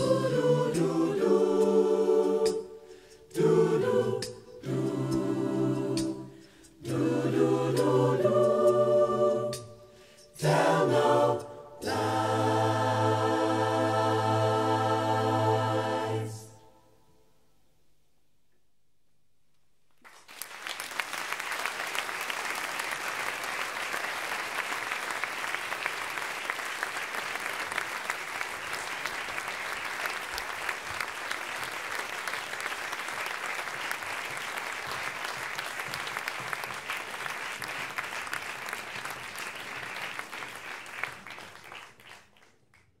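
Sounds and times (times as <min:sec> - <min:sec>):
audience applauding: 0:20.0 - 0:42.9.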